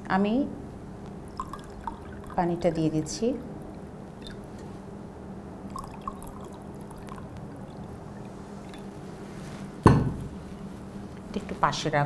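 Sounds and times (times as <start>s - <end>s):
water trickling into a glass: 1.2s - 4.7s, 5.6s - 9.2s
water dripping plinks: 1.3s - 4.6s, 5.7s - 9.0s.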